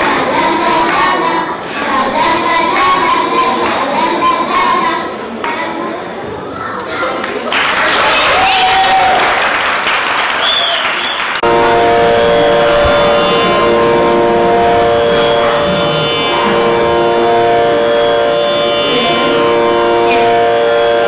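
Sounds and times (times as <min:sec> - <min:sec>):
audience applause: 0:07.2 - 0:17.1
held notes drone: 0:11.4 - 0:21.0.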